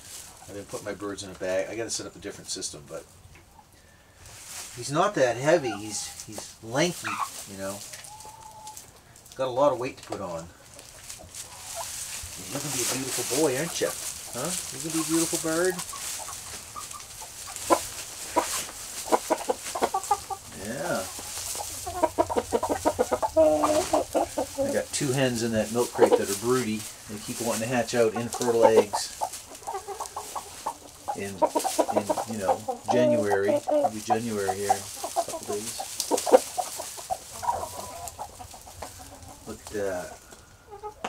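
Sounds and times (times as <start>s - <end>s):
chickens clucking: 0.0s - 41.0s
chicken drawn-out call: 5.2s - 6.3s, 7.0s - 9.0s, 11.3s - 24.9s, 28.0s - 39.6s.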